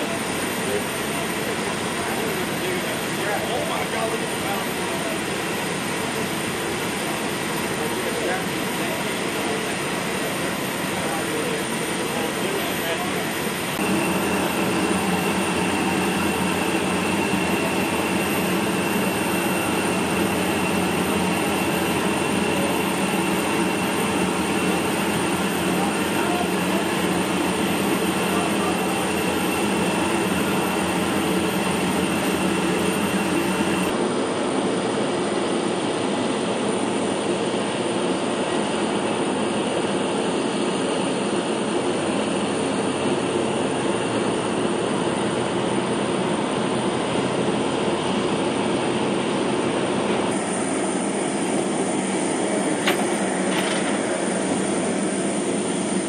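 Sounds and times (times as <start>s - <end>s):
heavy machinery drone: 0.0s - 56.0s
thin high whine: 6.9s - 34.0s.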